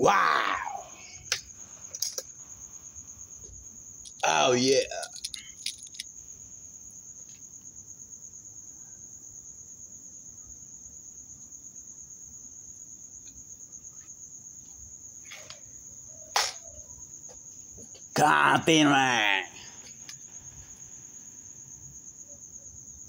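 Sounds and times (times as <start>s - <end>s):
crickets chirring: 0.0s - 23.0s.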